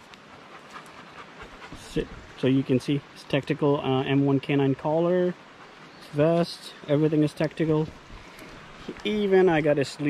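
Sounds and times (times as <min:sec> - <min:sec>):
dog panting: 0:00.2 - 0:02.2, 0:05.4 - 0:06.2.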